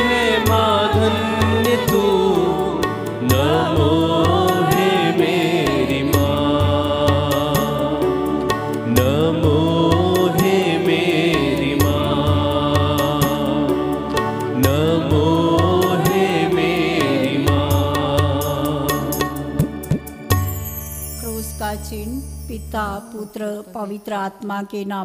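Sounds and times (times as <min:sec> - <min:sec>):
women's choir singing a hymn: 0:00.0 - 0:08.5, 0:09.5 - 0:13.7, 0:14.8 - 0:19.2
instrumental accompaniment with low beat: 0:00.0 - 0:21.2.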